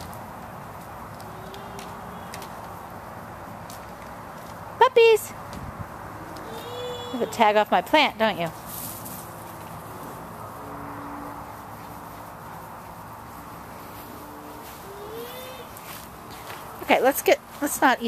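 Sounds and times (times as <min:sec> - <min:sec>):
outdoor background hum and hiss: 0:00.0 - 0:18.0.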